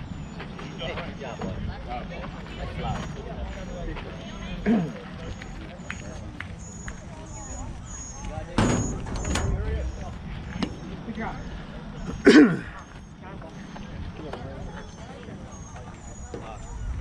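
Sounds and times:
voices calling out: 0.0 - 17.0.

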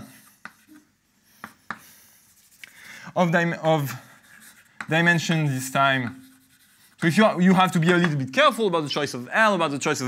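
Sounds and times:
chalk scratching on blackboard: 0.0 - 8.1
chalk tapping on blackboard: 0.2 - 2.6, 4.2 - 8.3.

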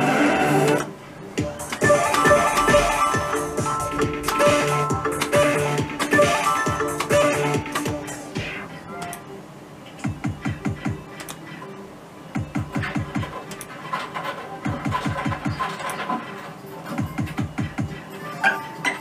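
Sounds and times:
slot machine melodic jingle: 1.4 - 9.2.

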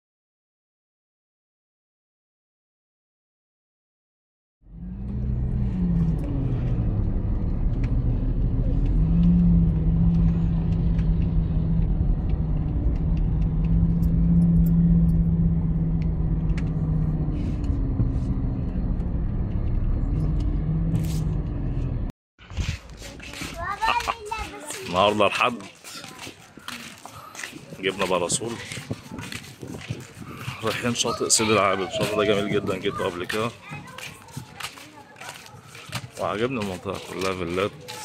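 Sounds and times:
road noise: 4.6 - 38.0
car engine hum: 4.7 - 22.1.

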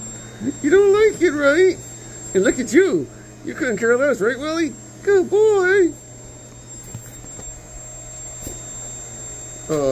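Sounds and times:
vacuum cleaner running: 0.0 - 9.9.

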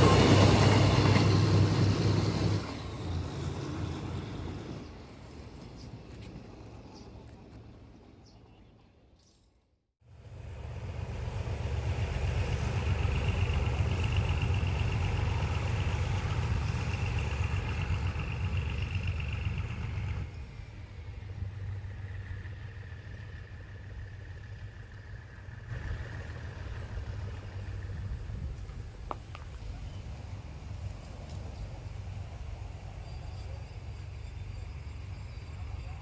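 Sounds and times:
diesel locomotive idling: 0.0 - 5.3, 10.1 - 36.0.

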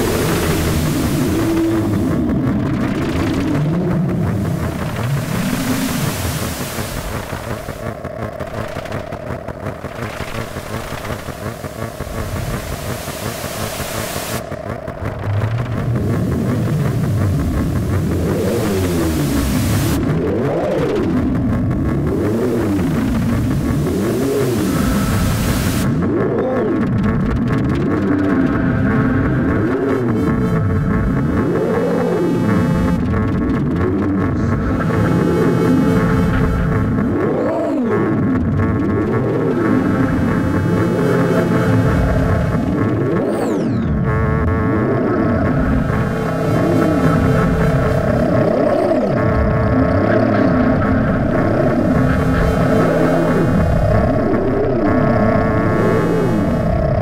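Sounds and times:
synthesized tones sweeping in pitch: 0.0 - 8.0, 10.0 - 26.7
steady held synth notes: 0.0 - 37.4, 38.0 - 57.0
bright hiss of noise: 10.2 - 14.5.

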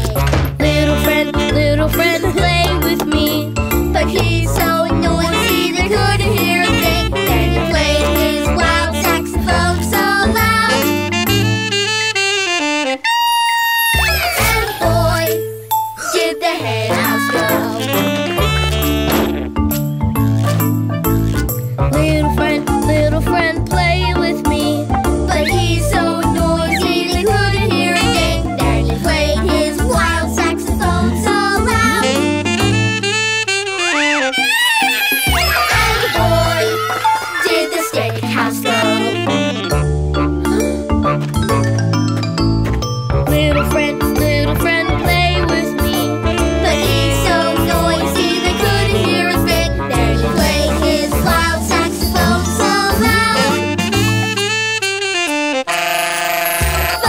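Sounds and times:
children's song backing track: 0.0 - 55.8, 56.4 - 57.0
saxophone playing jazzy notes: 5.2 - 9.3, 10.4 - 14.8, 17.4 - 21.7, 31.7 - 37.5, 38.6 - 40.3, 45.9 - 51.2, 53.0 - 57.0.

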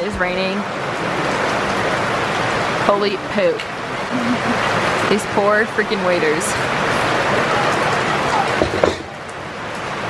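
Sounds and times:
rain on paving and parasols: 0.0 - 10.0.

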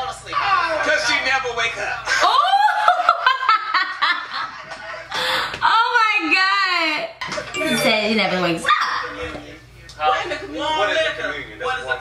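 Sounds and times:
group talking and laughing in video: 0.0 - 12.0
woman laughing hard: 2.2 - 4.5.

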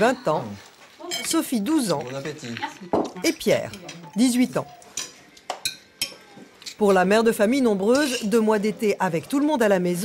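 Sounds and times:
cutlery and dishes clinking: 1.0 - 8.6.

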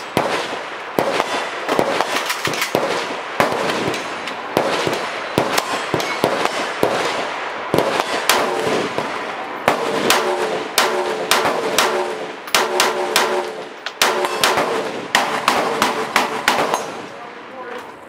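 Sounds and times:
rifle shots with echo: 0.0 - 17.6.

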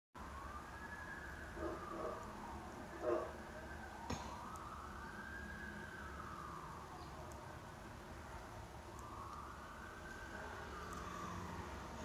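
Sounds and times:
faint siren wailing: 0.2 - 12.0.

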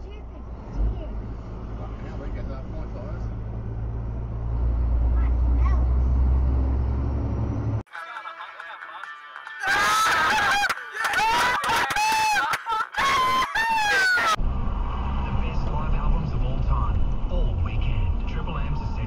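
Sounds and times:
car engine and road hum: 0.0 - 7.8, 14.4 - 19.0.

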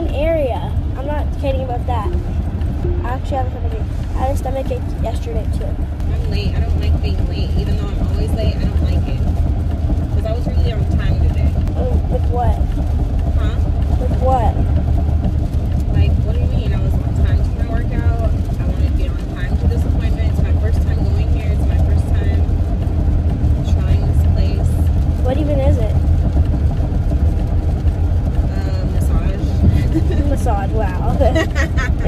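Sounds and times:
car cabin road rumble: 0.0 - 32.0.

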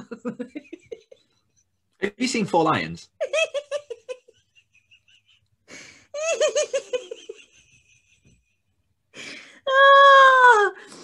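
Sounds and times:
person laughing: 3.2 - 8.6.

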